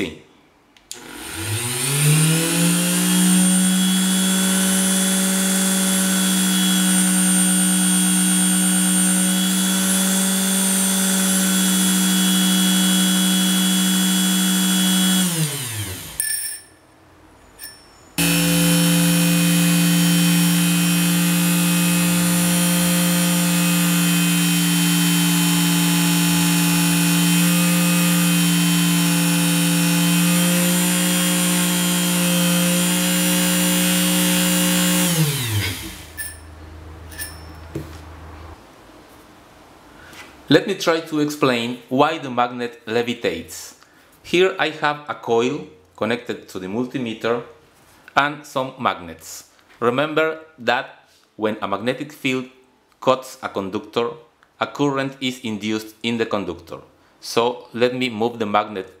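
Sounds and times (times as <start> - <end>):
rotary tool motor whining: 1.0 - 16.2, 18.2 - 36.5.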